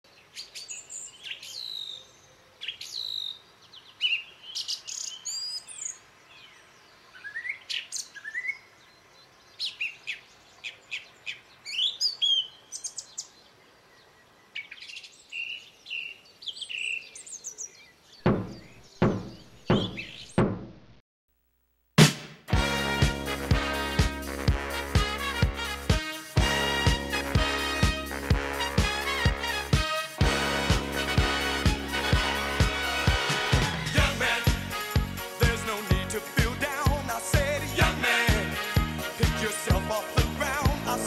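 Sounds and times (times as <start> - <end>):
songbirds chirping: 0.0 - 20.5
heavy knocks: 18.3 - 20.8.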